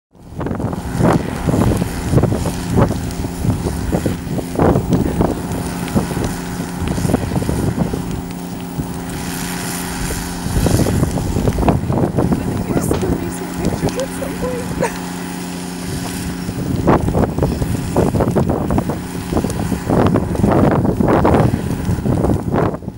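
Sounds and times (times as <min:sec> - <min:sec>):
vehicle engine running: 0:00.1 - 0:22.9
wind buffeting microphone: 0:00.1 - 0:22.9.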